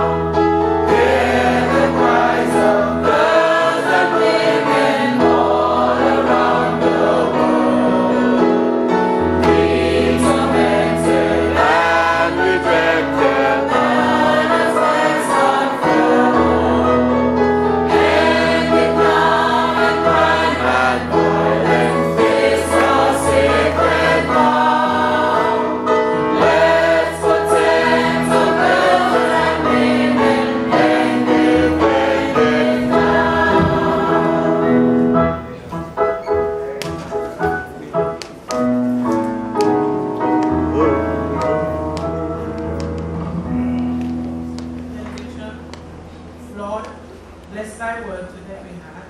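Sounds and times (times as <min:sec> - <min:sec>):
small choir singing a hymn: 0:00.0 - 0:35.6
instrumental accompaniment: 0:00.0 - 0:47.5
bass line in long notes: 0:40.5 - 0:46.2.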